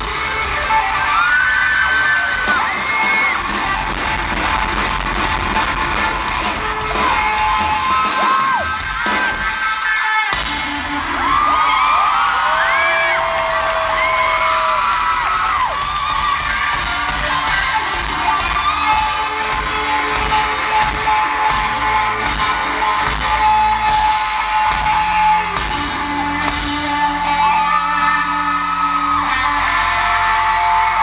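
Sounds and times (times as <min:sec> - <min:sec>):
crowd screaming: 0:00.0 - 0:31.0
live pop-rock band: 0:00.0 - 0:31.0.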